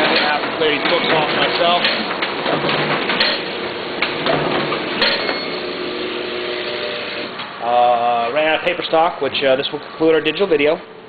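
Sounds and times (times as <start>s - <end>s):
booklet maker clattering: 0.0s - 5.5s
sharp mechanical knocks: 0.0s - 5.8s.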